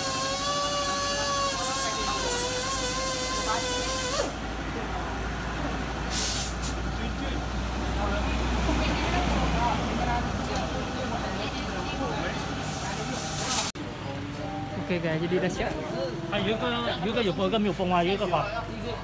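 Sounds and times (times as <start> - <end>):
short bursts of hiss: 6.1 - 6.8, 12.6 - 13.8.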